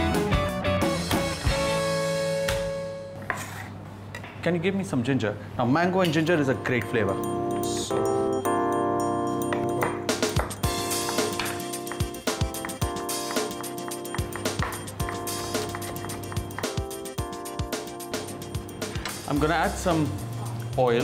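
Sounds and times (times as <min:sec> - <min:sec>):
music with steady beat: 0:00.0 - 0:03.1, 0:06.5 - 0:21.0.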